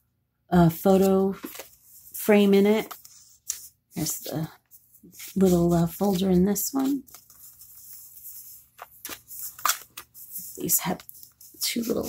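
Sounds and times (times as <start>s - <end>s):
paper pages flipping: 0.8s - 12.0s.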